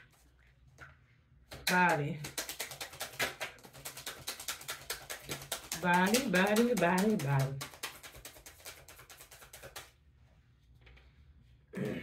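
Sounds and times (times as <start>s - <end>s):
cards being shuffled: 2.2s - 9.9s.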